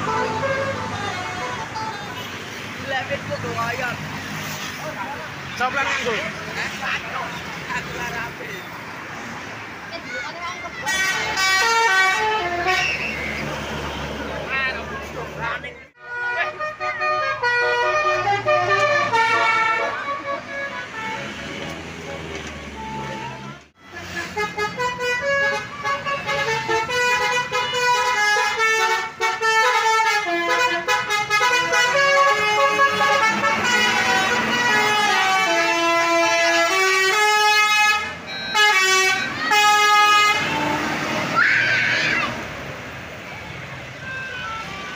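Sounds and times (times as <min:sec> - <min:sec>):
bus engine running: 0:00.0 - 0:08.7
road noise: 0:00.0 - 0:44.9
musical air horn playing a tune: 0:10.9 - 0:13.1, 0:16.0 - 0:21.2, 0:24.2 - 0:41.3.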